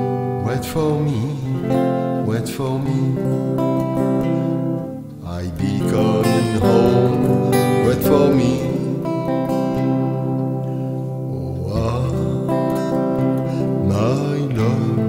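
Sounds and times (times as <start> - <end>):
electric guitar melody: 0.0 - 15.0.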